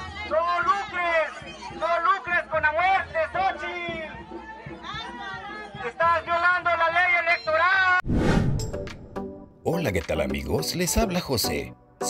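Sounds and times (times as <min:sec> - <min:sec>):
crowd chatter: 0:00.0 - 0:06.2.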